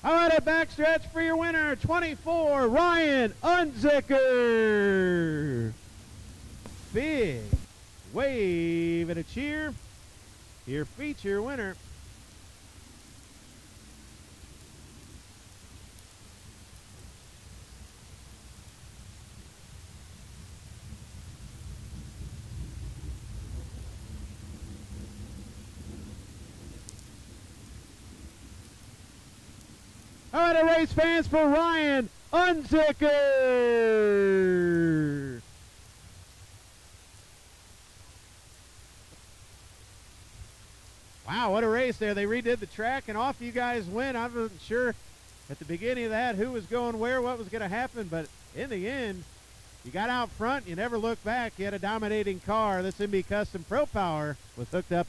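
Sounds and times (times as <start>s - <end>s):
faint hum: 0.0s - 55.0s
faint steady hiss: 0.0s - 55.0s.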